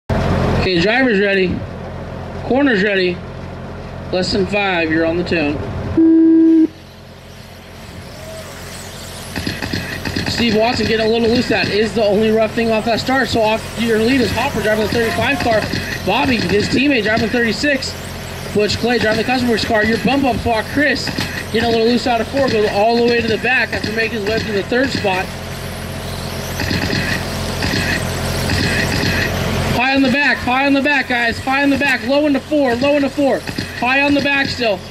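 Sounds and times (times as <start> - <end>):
loud electronic beep: 6.0 - 34.9
high whine of electric rc cars: 6.6 - 34.9
whirr of electric motors and tyres: 6.6 - 34.9.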